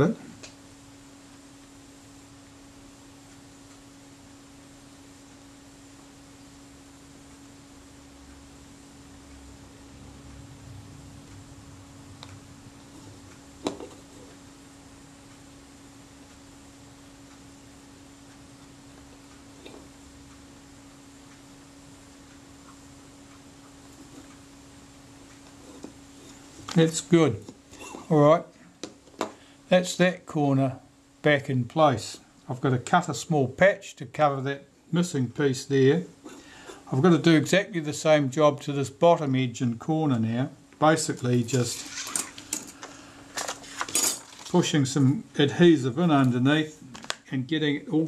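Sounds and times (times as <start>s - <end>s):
low electrical hum: 0.0s - 48.0s.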